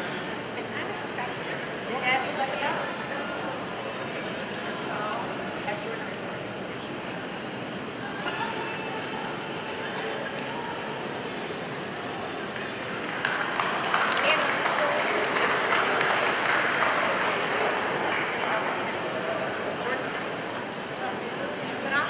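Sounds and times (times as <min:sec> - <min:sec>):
crowd murmur: 0:00.0 - 0:22.0
applause: 0:12.4 - 0:19.8.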